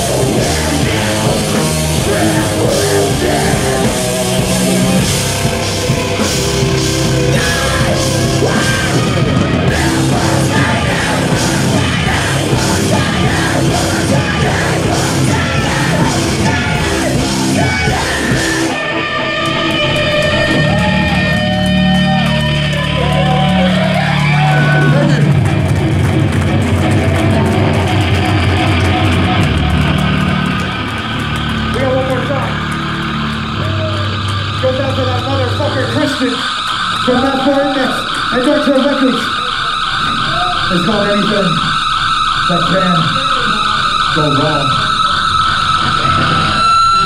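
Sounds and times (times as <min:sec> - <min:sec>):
person singing: 0:00.0 - 0:21.3
heavy band music: 0:00.0 - 0:47.0.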